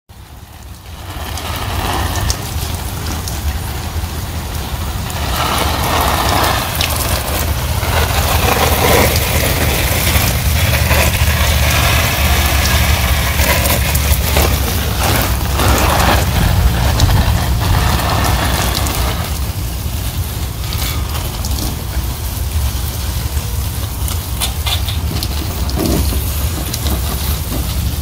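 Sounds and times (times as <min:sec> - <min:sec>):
hose water spraying on leaves: 0:00.1 - 0:28.0
low mechanical hum: 0:00.2 - 0:28.0.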